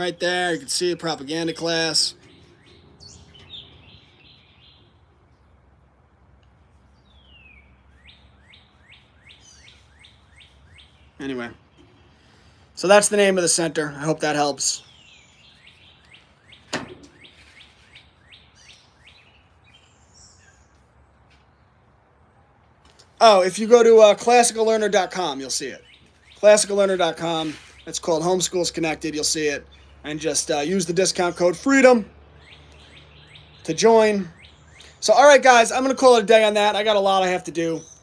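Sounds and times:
faint birdsong chirps: 0:00.0 - 0:38.0
faint outdoor background: 0:00.0 - 0:38.0.

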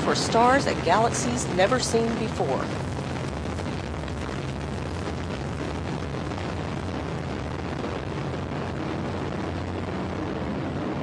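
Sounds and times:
rocket engines roaring: 0:00.0 - 0:11.0.

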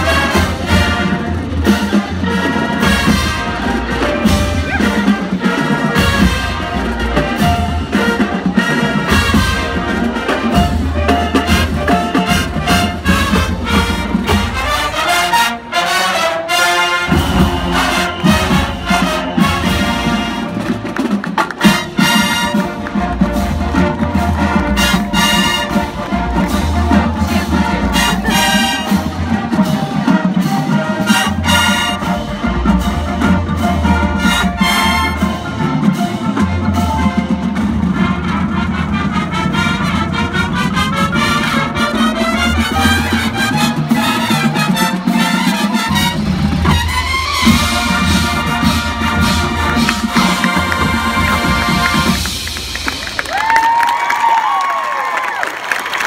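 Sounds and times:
drumline: 0:00.0 - 0:56.0
marching band brass: 0:00.0 - 0:56.0.

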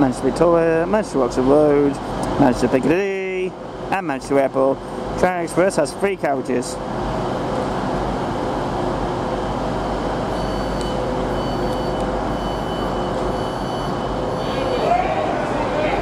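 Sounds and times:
diesel train idling: 0:11.0 - 0:16.0.

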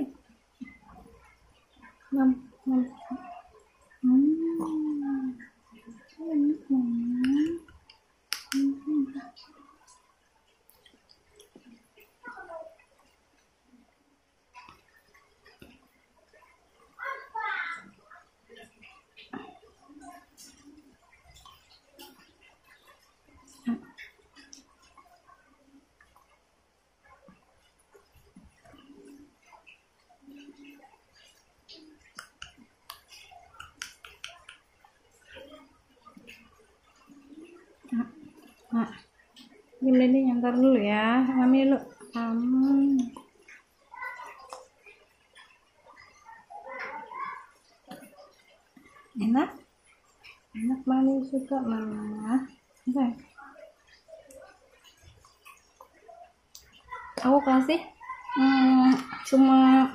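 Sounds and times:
baby mouthing wet smacks: 0:07.2 - 0:08.9, 0:31.2 - 0:35.4.

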